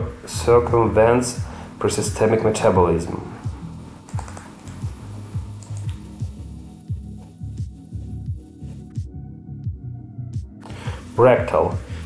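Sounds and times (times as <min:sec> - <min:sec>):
electronic music with deep beat: 0:00.0 - 0:12.0
keyboard and mouse clicks: 0:04.1 - 0:04.9, 0:05.6 - 0:06.0.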